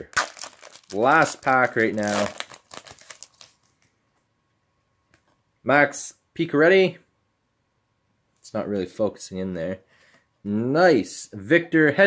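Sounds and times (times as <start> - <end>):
foil wrapper crinkling: 0.0 - 3.8.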